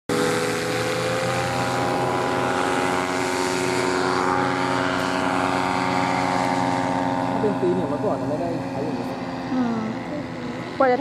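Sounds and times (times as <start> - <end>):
paramotor engines running: 0.1 - 11.0.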